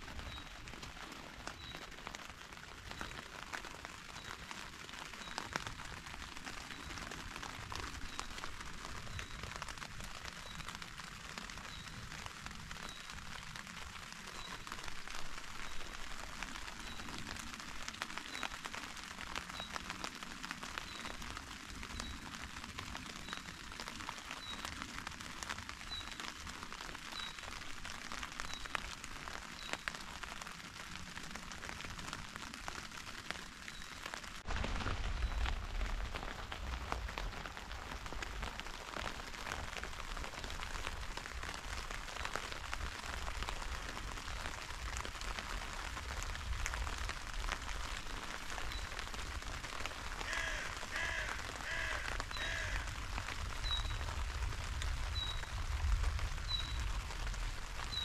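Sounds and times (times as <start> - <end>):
rain pattering on tent fabric: 0.0 - 58.0.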